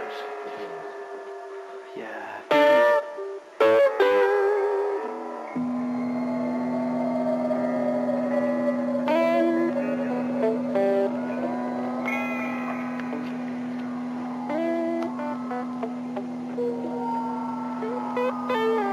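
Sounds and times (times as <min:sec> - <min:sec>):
guitar music: 0:02.5 - 0:18.9.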